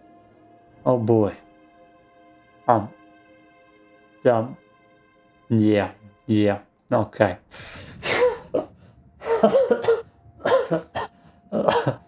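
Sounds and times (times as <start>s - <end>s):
man laughing: 8.1s - 12.0s.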